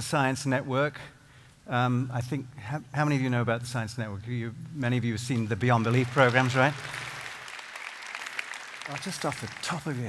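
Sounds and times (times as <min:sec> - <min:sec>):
light scattered applause: 0:05.8 - 0:10.0.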